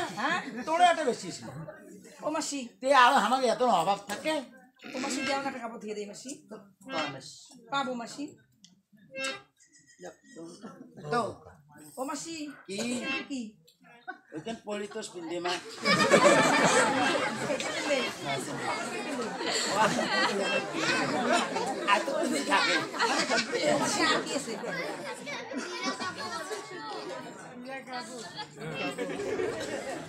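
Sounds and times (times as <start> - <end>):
several voices talking: 0.0 - 30.0.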